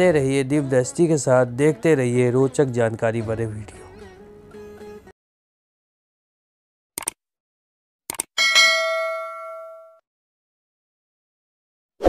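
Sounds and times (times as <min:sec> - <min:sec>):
notification bell ding: 0:08.4 - 0:10.0.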